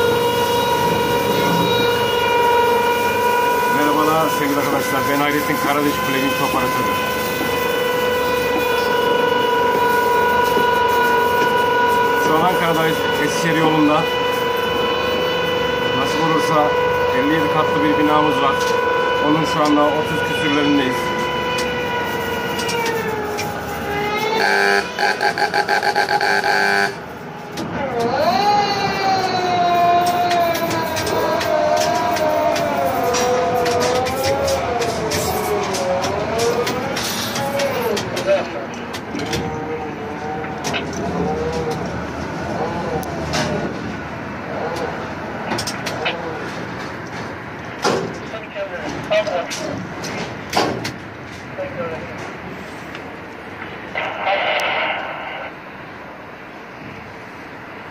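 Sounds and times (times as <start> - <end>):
crane motors whining: 0.0 - 47.8
rapid pulsing warning beeps: 24.4 - 27.0.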